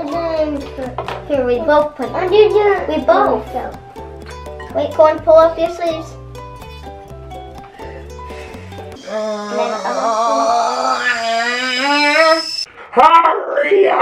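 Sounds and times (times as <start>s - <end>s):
child's voice: 0.0s - 3.8s, 4.7s - 6.2s, 9.0s - 12.2s, 13.0s - 14.0s
background music with steady beat: 0.0s - 9.0s
wavering sung-sounding tone: 9.0s - 12.7s.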